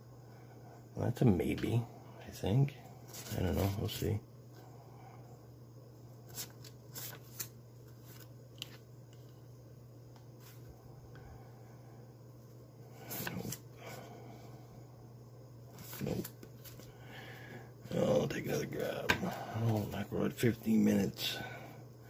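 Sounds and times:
faint low hum: 0:00.0 - 0:22.0
banknotes rustling: 0:03.0 - 0:04.0, 0:06.2 - 0:08.8, 0:13.0 - 0:13.6, 0:15.7 - 0:17.0.

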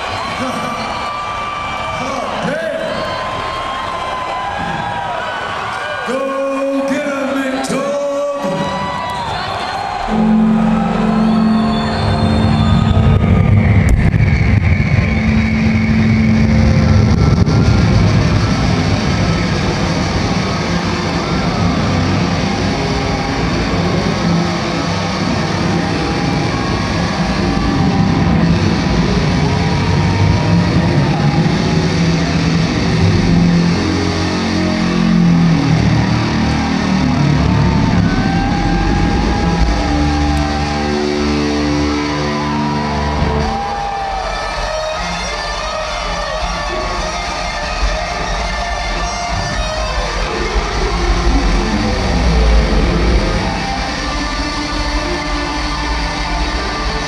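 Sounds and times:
distorted electric guitar solo: 0:08.5 - 0:57.0
rumbling low end: 0:10.8 - 0:25.4.

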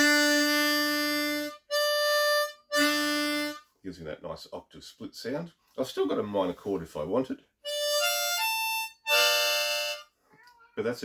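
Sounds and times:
harmonica chords: 0:00.0 - 0:03.7, 0:07.6 - 0:10.2.

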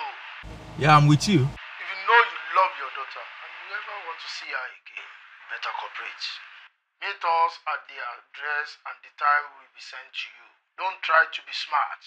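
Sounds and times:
person talking over telephone: 0:00.8 - 0:03.0.

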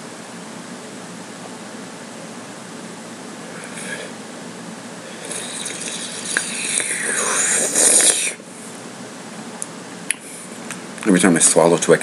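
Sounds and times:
man's hissing breath: 0:05.1 - 0:08.4
mouth clicks: 0:05.2 - 0:08.4.

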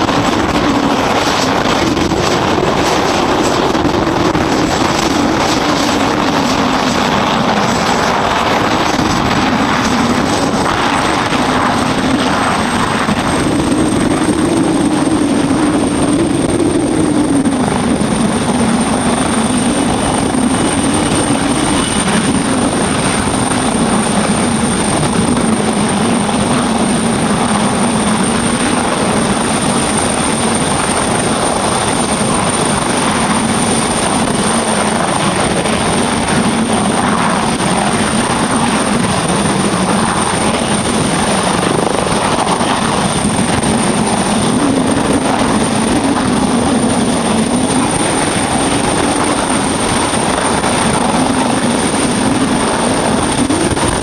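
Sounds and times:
helicopter rotor: 0:00.0 - 0:54.0
high turbine whine: 0:00.0 - 0:54.0.

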